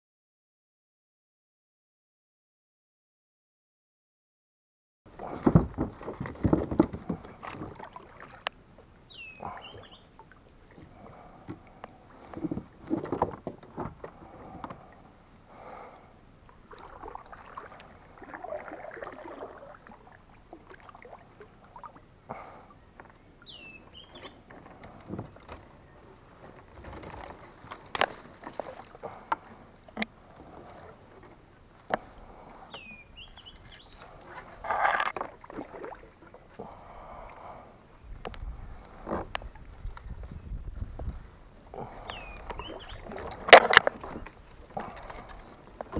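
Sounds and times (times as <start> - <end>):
branches rustling against hull: 5.1 - 15.8, 23.0 - 36.7, 38.1 - 45.9.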